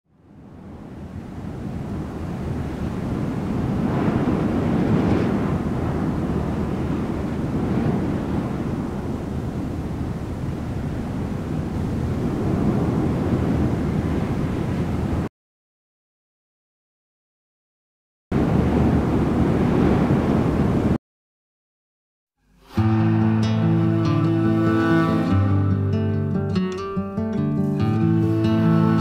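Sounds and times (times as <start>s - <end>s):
deep steady rushing noise: 22.6s - 26.0s.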